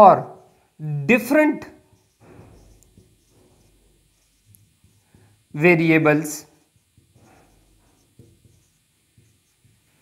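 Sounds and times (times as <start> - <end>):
marker writing on whiteboard: 1.6 - 5.4, 6.4 - 10.0.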